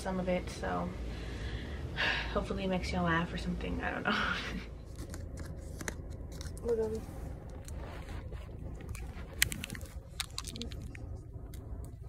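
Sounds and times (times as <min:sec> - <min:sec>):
low rumble: 0:00.0 - 0:12.0
phone handling rustling: 0:07.5 - 0:11.0.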